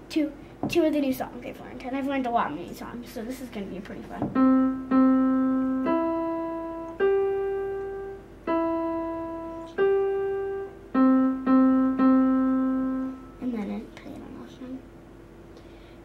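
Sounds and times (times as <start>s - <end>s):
electronic keyboard piano melody: 4.3s - 13.5s.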